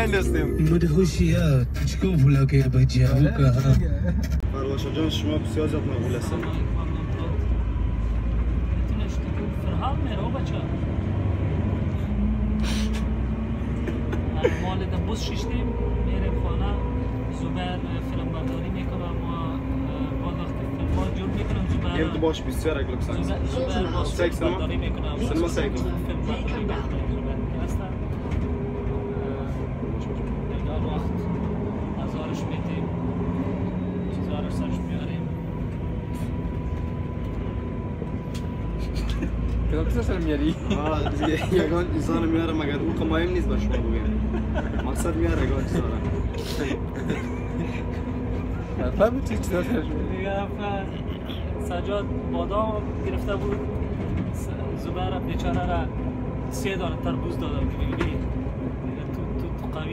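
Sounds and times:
low hum: 0:00.0 - 0:04.5
vehicle cabin rumble: 0:00.0 - 0:07.5
train carriage rumble and hum: 0:00.0 - 0:59.9.

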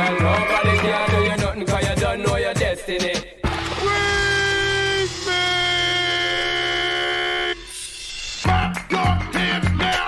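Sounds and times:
hip hop beat: 0:00.0 - 0:10.0.

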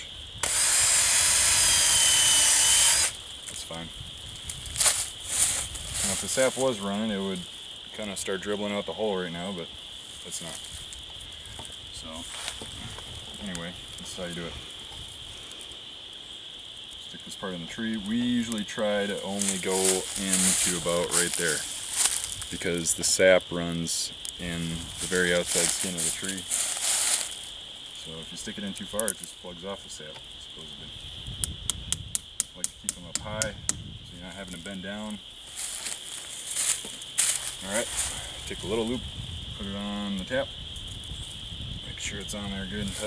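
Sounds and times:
rustling and crinkling of dry leaves: 0:03.1 - 0:30.8, 0:34.1 - 0:43.0.

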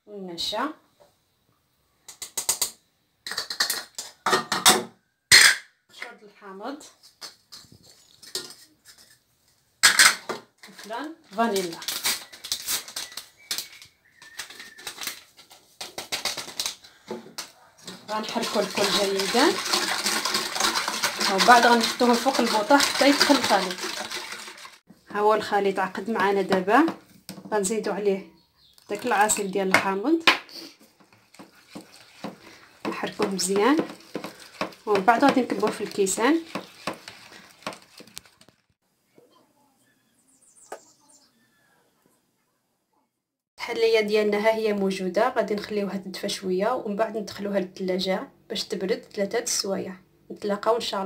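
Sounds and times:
faint handling sounds: 0:06.9 - 0:09.7
paper sachet rustling: 0:10.6 - 0:24.8, 0:31.2 - 0:38.8
whisk beating in a saucepan: 0:17.9 - 0:24.8, 0:30.9 - 0:38.6.

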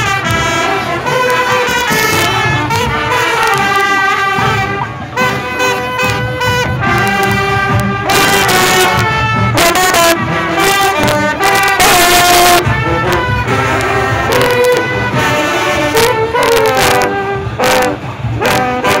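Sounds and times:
brass section playing: 0:00.0 - 0:19.0
sharp percussion hits: 0:00.0 - 0:19.0.

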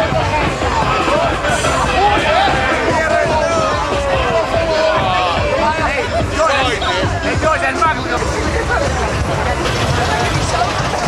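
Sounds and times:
crowd chatter: 0:00.0 - 0:11.0
music playing: 0:00.0 - 0:11.0
people shouting: 0:00.1 - 0:07.5.

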